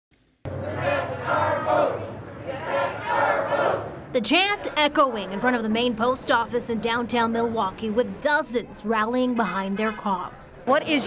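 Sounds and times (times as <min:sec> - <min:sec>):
crowd chanting in unison: 0:00.5 - 0:05.0.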